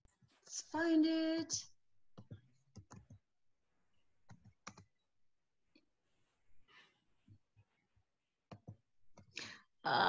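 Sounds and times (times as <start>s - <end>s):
mouse and keyboard clicks: 4.3s - 4.9s.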